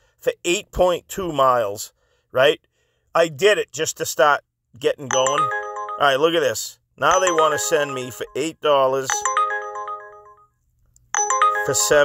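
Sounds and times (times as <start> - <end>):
phone alert tone: 5.1 - 6.4, 7.1 - 10.5, 11.1 - 12.0.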